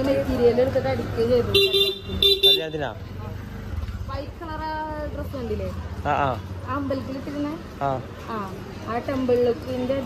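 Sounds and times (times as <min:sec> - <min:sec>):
people talking in the street: 0:00.0 - 0:10.0.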